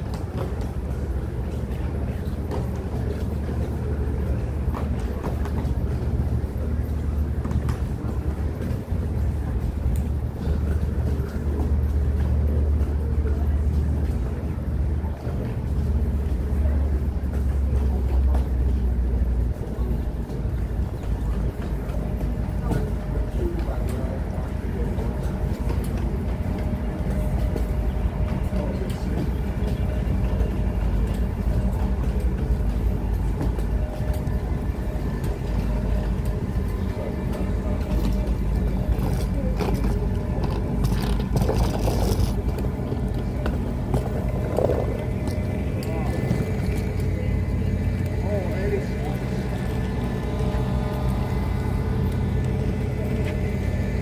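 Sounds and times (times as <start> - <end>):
faint voices of passengers: 0.0 - 54.0
steady low rumble: 0.0 - 54.0
wheeled suitcases rolling on concrete: 0.0 - 54.0.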